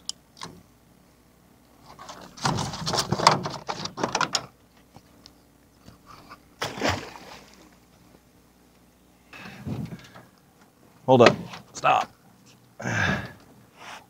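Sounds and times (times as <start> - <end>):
splash in water: 6.6 - 7.6.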